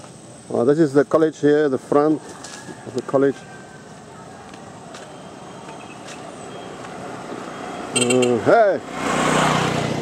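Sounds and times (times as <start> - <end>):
motor scooter approaching: 5.2 - 10.0.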